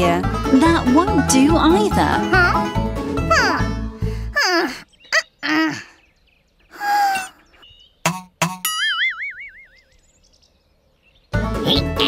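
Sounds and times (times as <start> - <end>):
cheerful background music: 0.0 - 4.3, 11.3 - 12.0
wavering boing tone: 8.1 - 9.8.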